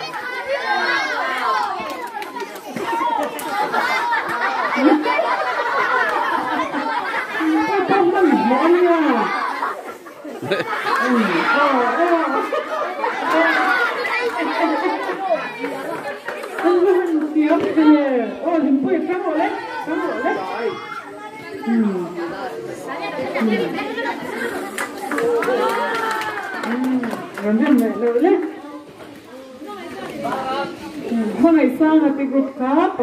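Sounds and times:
children chattering and calling out: 0.0 - 33.0.

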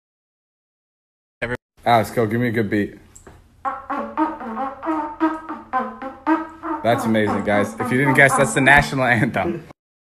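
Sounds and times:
trumpet playing an anthem: 3.6 - 8.9.

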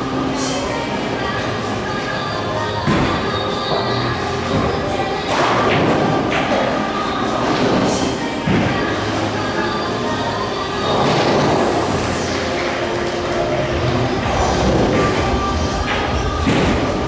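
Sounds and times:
pool hall room noise: 0.0 - 17.0.

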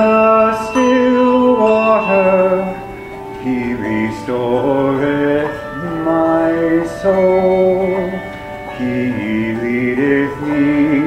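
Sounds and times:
handbells ringing chords: 0.0 - 11.0.

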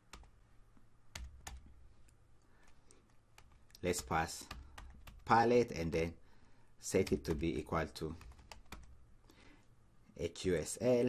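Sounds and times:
keyboard typing: 0.0 - 0.4, 1.1 - 5.4, 7.0 - 9.0.

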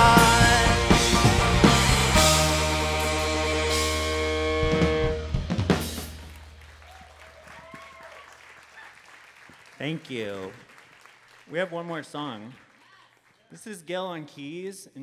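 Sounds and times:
drum and cymbal hits: 0.0 - 6.4
live rock band playing: 0.0 - 6.6.

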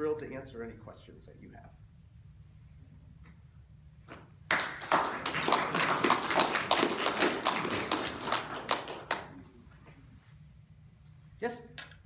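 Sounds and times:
audience applauding: 4.5 - 9.4.

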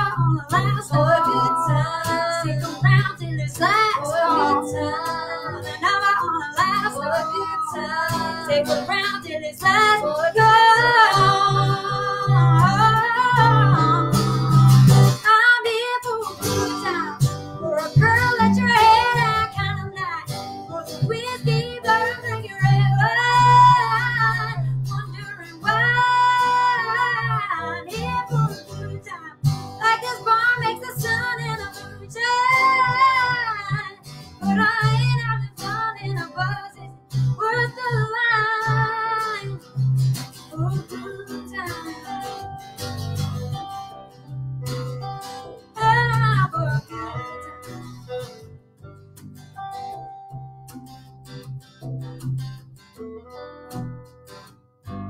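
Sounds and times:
woman singing: 0.0 - 42.6, 45.7 - 47.5
electric guitar: 0.0 - 55.0
strummed acoustic guitar: 0.0 - 55.0.

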